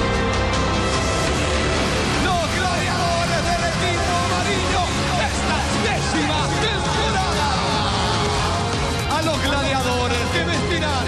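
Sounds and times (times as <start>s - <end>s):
background music with steady beat: 0.0s - 11.0s
people shouting and cheering: 0.1s - 11.0s.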